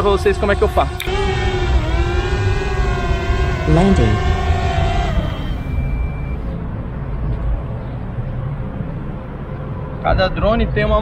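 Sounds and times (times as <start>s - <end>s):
drone propellers whining: 0.0s - 6.6s.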